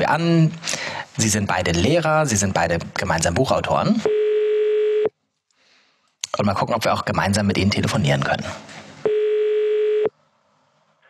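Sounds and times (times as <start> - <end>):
telephone ringback tone: 4.1 - 5.1, 9.1 - 10.1.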